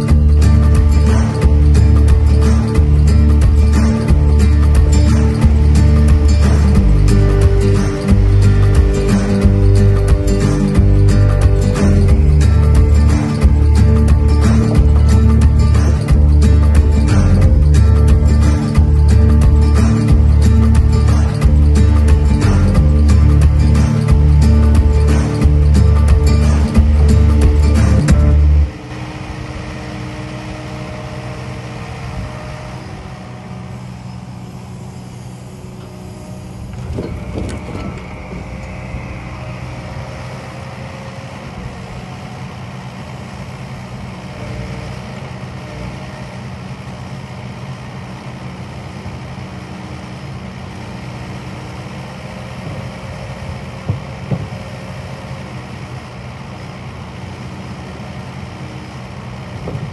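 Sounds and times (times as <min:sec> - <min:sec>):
excavator diesel engine: 0:00.0 - 0:59.9.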